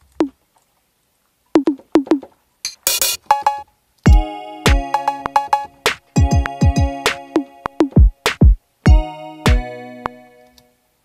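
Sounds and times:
drum machine percussion hits: 1.6s - 9.7s
hi-hat hiss: 2.7s - 3.4s.

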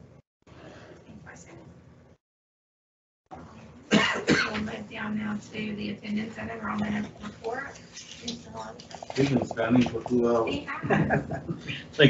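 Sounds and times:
person coughing: 3.9s - 4.6s.

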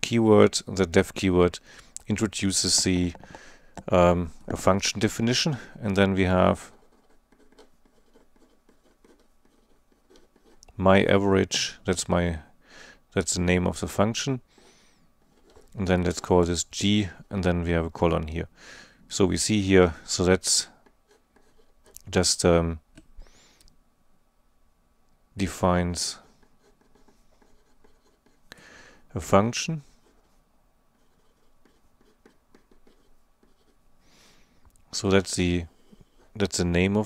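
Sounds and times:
marker scratching on paper: 2.2s - 5.7s, 6.3s - 10.6s, 14.6s - 16.4s, 21.1s - 22.1s, 26.2s - 28.4s, 30.0s - 33.8s
marker tip tapping: 2.7s - 3.9s
marker squeaking on paper: 6.6s - 10.6s, 31.0s - 33.8s.

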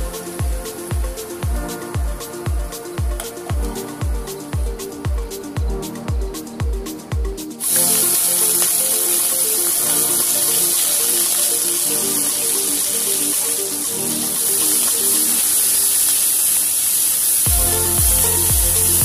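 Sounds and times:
background music: 0.0s - 19.0s
prawns sizzling in hot oil: 7.6s - 19.0s.

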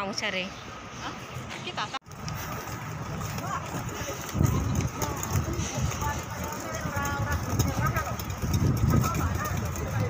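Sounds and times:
faint voices talking: 0.9s - 10.0s.

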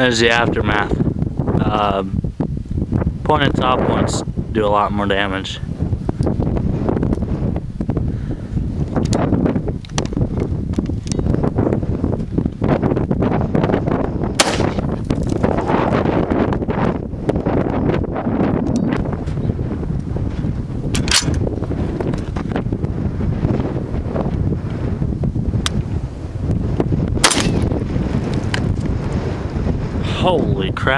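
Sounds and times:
wind buffeting microphone: 0.0s - 30.9s
rifle shots: 14.4s - 14.9s, 27.2s - 27.8s.

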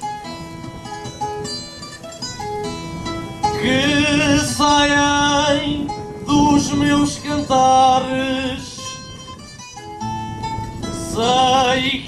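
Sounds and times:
plucked acoustic guitar: 0.0s - 12.0s.

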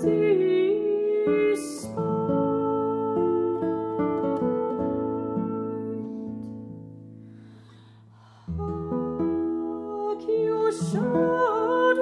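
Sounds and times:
classical guitar plucking: 0.0s - 12.0s.

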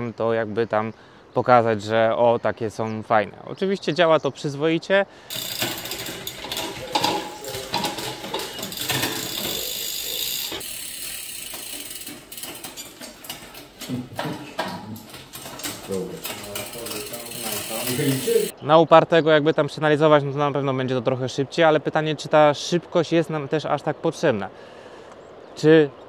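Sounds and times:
bicycle chain clicking and ratcheting: 5.3s - 18.5s.

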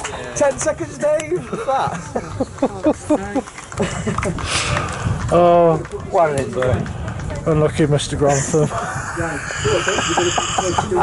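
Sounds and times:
men laughing and chatting: 0.0s - 11.0s.

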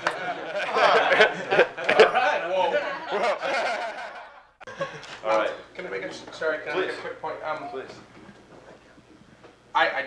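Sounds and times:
people chuckling and laughing: 0.0s - 5.3s.

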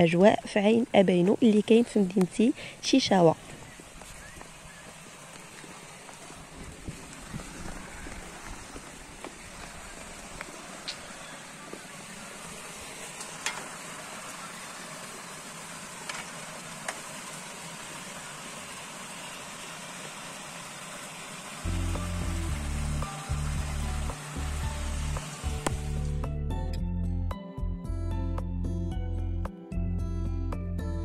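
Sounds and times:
music with heavy bass: 21.7s - 31.0s.

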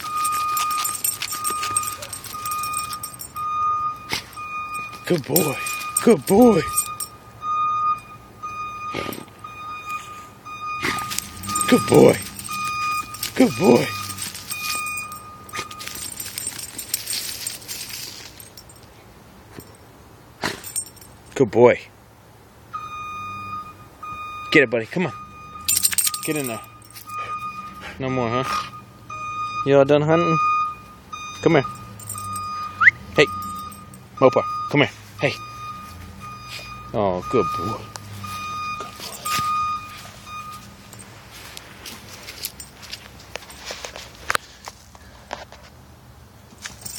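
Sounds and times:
dog paws scratching soil: 0.0s - 3.4s, 10.8s - 18.6s, 38.2s - 40.7s
metallic jingling: 0.0s - 7.2s, 10.8s - 21.4s, 25.6s - 27.7s, 31.5s - 34.6s, 37.4s - 43.8s, 46.5s - 46.9s
reversing alarm beeping: 0.0s - 16.1s, 22.8s - 40.8s
low engine hum: 0.0s - 19.8s.

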